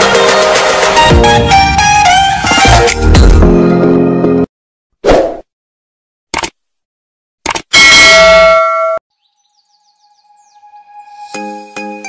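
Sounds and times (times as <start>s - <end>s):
short clicks: 6.4s - 6.6s, 7.4s - 7.8s.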